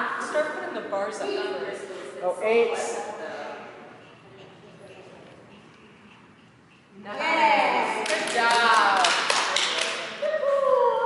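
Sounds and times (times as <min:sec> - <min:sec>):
hand claps: 0:07.8 - 0:10.2.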